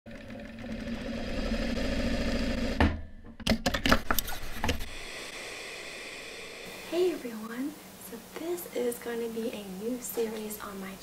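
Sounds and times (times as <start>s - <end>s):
sewing machine running: 0.1s - 2.8s.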